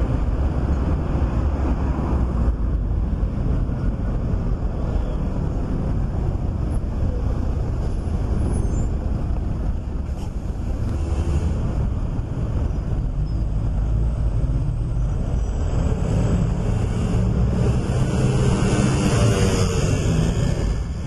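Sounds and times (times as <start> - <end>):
low rumble of road traffic: 0.0 - 21.0.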